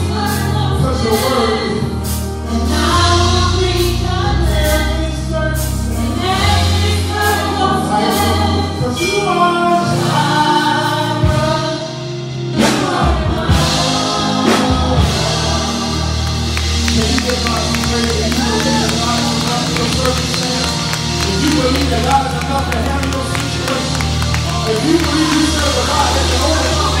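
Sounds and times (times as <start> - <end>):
band with bass and drums: 0.0 - 27.0
backing singers: 12.6 - 27.0.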